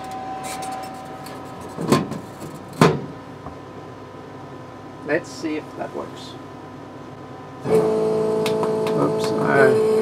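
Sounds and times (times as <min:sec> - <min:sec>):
laser cutter humming: 0:07.6 - 0:10.0.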